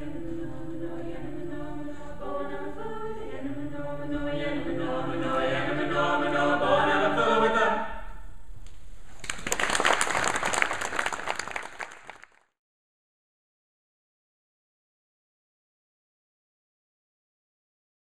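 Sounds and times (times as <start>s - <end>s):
choir singing in harmony: 0.0s - 8.2s
audience applause: 9.2s - 12.4s.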